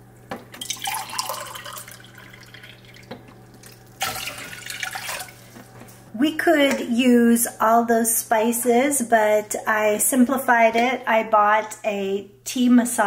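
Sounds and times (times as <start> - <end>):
water pouring into metal saucepan: 0.6 - 5.5.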